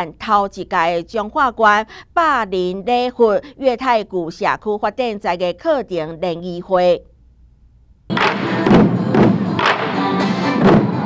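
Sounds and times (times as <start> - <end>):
taiko drums beaten in unison: 8.1 - 10.0, 10.6 - 11.0.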